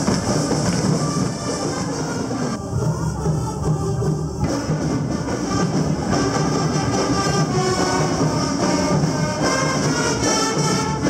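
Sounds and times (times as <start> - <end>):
parade band with brass: 0.0 - 11.0.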